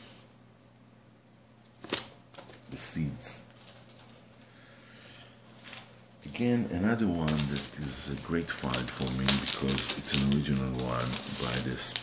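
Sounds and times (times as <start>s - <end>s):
faint steady hum: 0.0s - 12.0s
paper sleeve swish: 7.4s - 12.0s.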